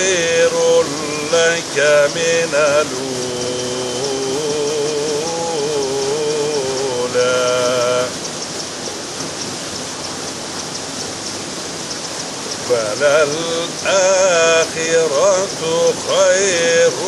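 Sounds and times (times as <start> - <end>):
man chanting: 0.0 - 8.2, 12.7 - 17.0
waterfall rushing into pool: 0.0 - 17.0.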